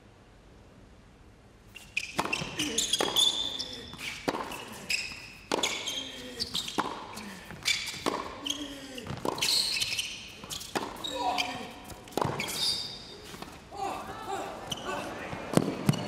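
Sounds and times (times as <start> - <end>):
tennis ball hit by racket: 2.1 - 3.4, 4.0 - 4.7, 5.5 - 5.9, 7.9 - 8.4, 9.1 - 9.6, 10.6 - 12.6, 15.5 - 16.0.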